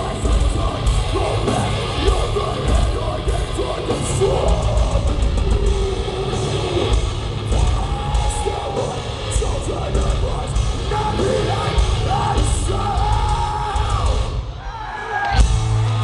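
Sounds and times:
person yelling and singing: 0:00.0 - 0:15.4
heavy metal band playing live: 0:00.0 - 0:16.0.

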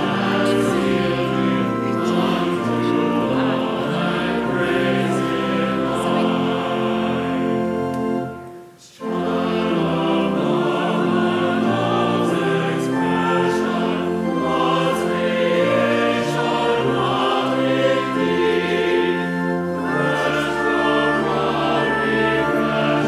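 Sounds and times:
congregation and choir singing hymn: 0:00.0 - 0:23.0.

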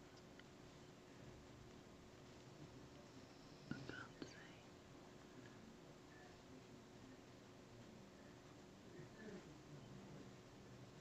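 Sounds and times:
faint whisper: 0:02.3 - 0:11.0.

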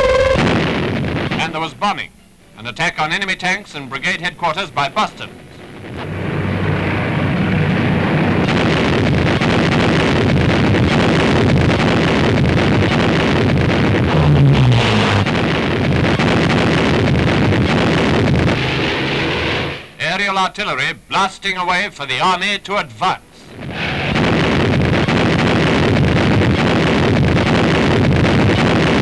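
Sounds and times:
piston aircraft engines roaring: 0:03.6 - 0:09.4.

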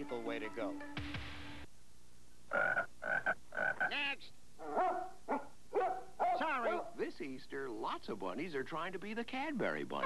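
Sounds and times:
dog yipping and barking: 0:04.6 - 0:07.0.

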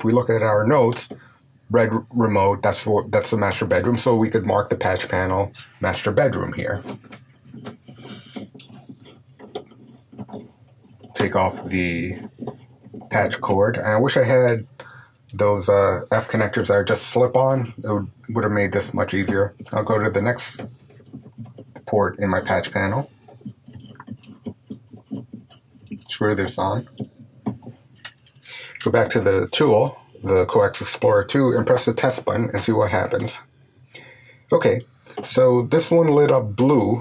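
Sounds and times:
steady low hum: 0:00.0 - 0:37.0
connector clicking and scraping: 0:04.9 - 0:14.3, 0:16.1 - 0:29.6.

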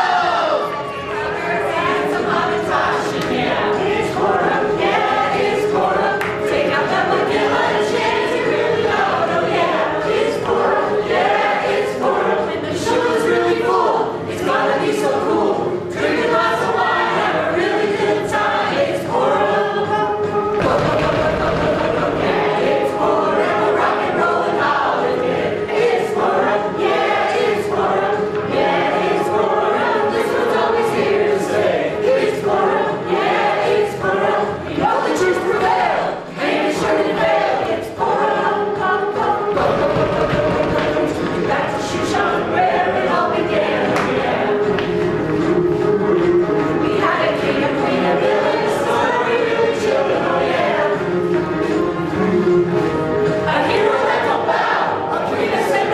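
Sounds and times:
voices singing in chorus: 0:00.0 - 0:55.9
backing music with steady beat: 0:01.6 - 0:55.9.

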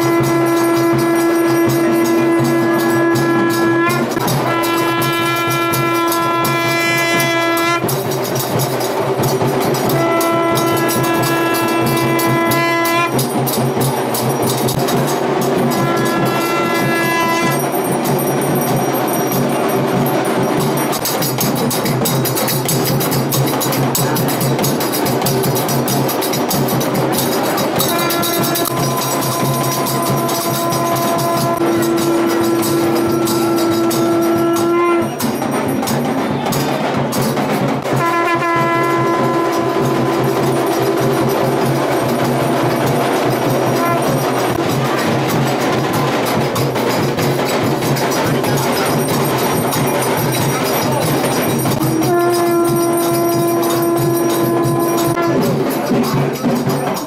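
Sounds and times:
conch shell blown: 0:00.0 - 0:08.1, 0:09.6 - 0:13.4, 0:14.6 - 0:17.9, 0:26.9 - 0:35.5, 0:37.8 - 0:46.1, 0:48.8 - 0:56.7
bells ringing: 0:00.0 - 0:57.0
drums and percussion beat: 0:00.0 - 0:57.0
hand cymbals clashing: 0:00.0 - 0:57.0.

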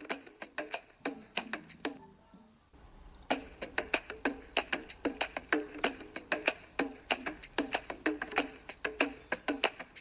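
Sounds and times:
sharp clicking ticks: 0:03.4 - 0:10.0.

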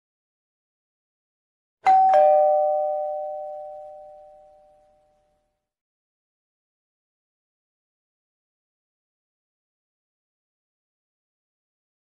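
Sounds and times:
two-note ding-dong chime: 0:01.8 - 0:05.3.

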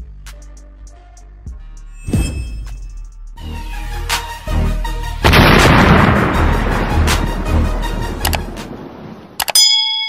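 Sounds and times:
background music with a beat: 0:00.0 - 0:08.8.

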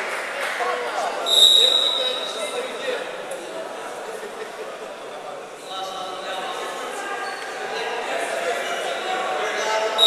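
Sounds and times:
spectators chattering: 0:00.0 - 0:10.0
referee's whistle blast: 0:01.3 - 0:02.4.

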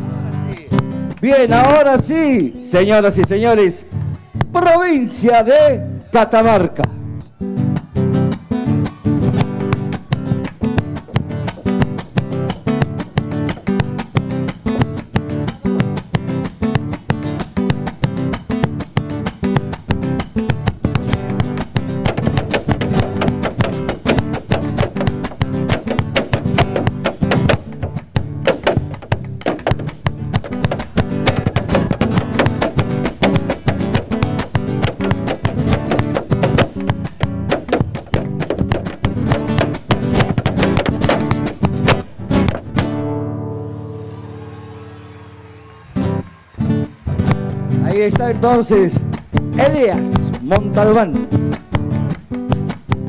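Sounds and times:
strummed acoustic guitar: 0:00.0 - 0:01.8, 0:06.9 - 0:44.0, 0:45.9 - 0:53.0
boots striking wooden stage: 0:09.2 - 0:15.3, 0:16.2 - 0:43.2, 0:48.2 - 0:53.0.

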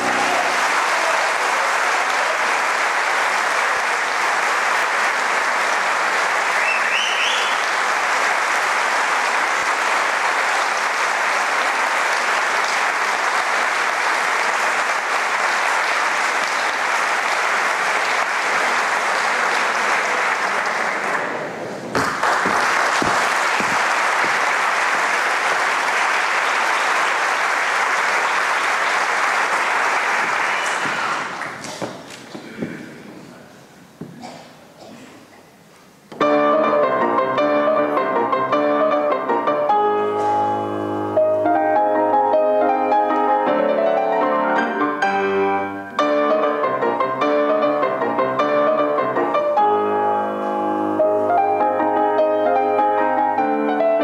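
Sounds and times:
audience applauding: 0:00.0 - 0:33.4.

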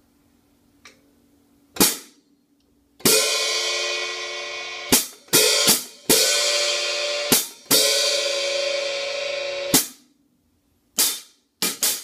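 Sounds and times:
hi-hat cymbal hit: 0:03.0 - 0:10.0.

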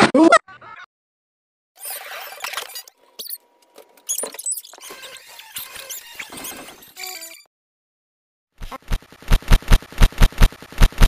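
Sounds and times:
high-pitched squeaks: 0:01.8 - 0:07.5.

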